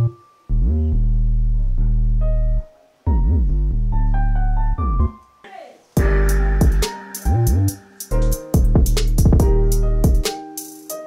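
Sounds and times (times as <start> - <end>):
deep bass note sliding up: 0.5 - 5.1, 6.0 - 10.1
sparse high melody note: 6.0 - 8.9.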